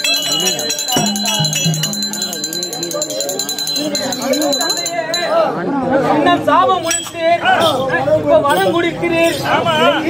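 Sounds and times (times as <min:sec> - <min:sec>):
small bells jingling: 0:00.0 - 0:05.4
voices: 0:00.0 - 0:10.0
held low note: 0:01.0 - 0:03.4.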